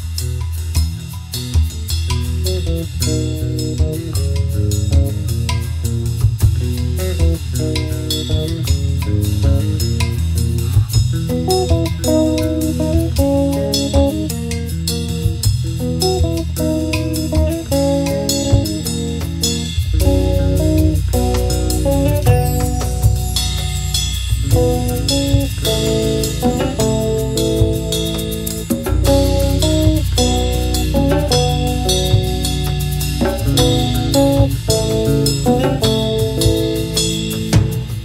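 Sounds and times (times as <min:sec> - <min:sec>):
drum kit with cymbals: 0:00.0 - 0:38.0
electric bass guitar: 0:00.0 - 0:38.0
hand drum: 0:00.0 - 0:38.0
repeated mid-range chords: 0:02.5 - 0:38.0.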